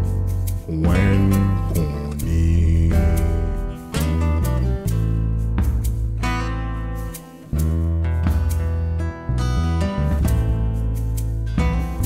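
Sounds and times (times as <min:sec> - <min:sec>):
acoustic guitar strumming: 0:00.0 - 0:12.0
low bass line: 0:00.0 - 0:12.0.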